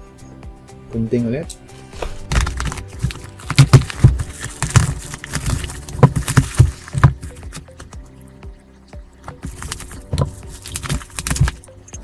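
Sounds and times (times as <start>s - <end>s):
bubble wrap crackling: 2.0s - 7.8s, 9.4s - 11.7s.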